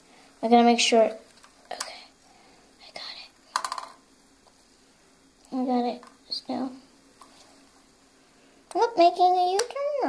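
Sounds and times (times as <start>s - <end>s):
soft whispered speech: 1.7s - 2.2s, 2.8s - 3.4s.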